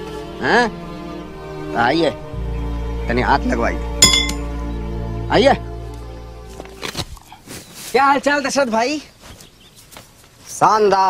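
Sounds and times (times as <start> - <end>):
background music: 0.0 - 7.2
sharp metallic clink: 4.0 - 4.5.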